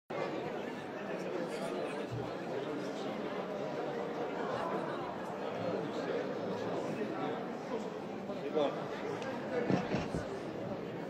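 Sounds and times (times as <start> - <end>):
crowd babble: 0.1 - 11.0.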